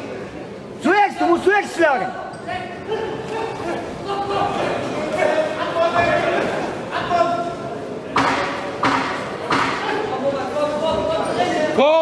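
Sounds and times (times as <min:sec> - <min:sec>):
voices calling out in a hall: 0:00.0 - 0:12.0.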